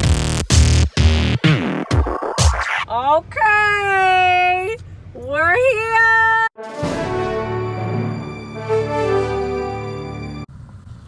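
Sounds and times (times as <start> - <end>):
electronic beat: 0.0 - 2.9.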